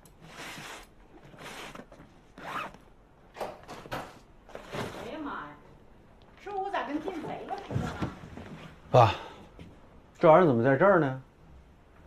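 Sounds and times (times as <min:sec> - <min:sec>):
fabric bag zipper pulled open: 0:02.4 - 0:02.8.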